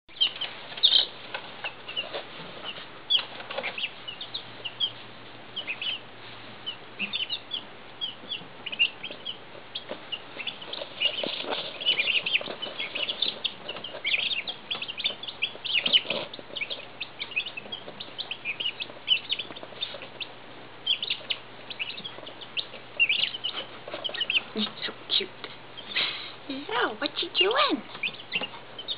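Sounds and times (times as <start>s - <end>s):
chicks peeping: 0.1s - 28.9s
faint low hum: 0.1s - 28.9s.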